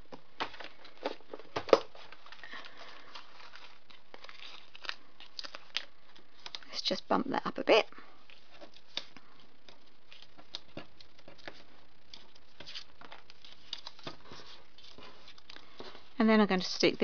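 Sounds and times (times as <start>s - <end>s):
cardstock rustling and ticking: 0.0s - 6.8s, 8.2s - 17.0s.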